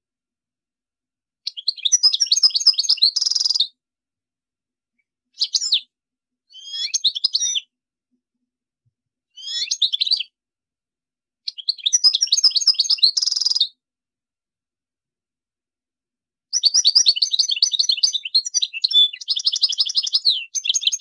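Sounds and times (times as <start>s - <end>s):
goldfinch singing: 1.5s - 3.7s, 6.5s - 7.7s, 9.4s - 10.3s, 11.5s - 13.7s, 16.6s - 21.0s.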